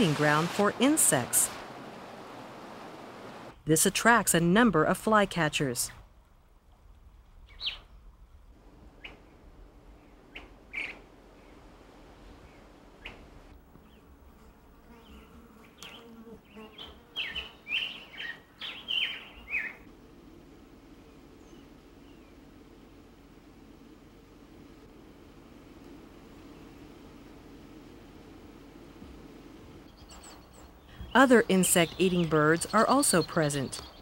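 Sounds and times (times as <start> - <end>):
bird chirping: 15.0 - 19.9, 29.8 - 34.0.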